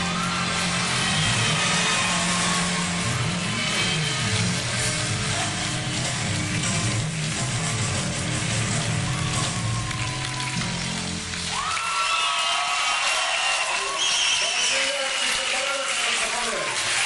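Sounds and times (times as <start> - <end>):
bass guitar: 0.0 - 11.8
electric guitars: 0.0 - 11.9
drums: 0.0 - 12.9.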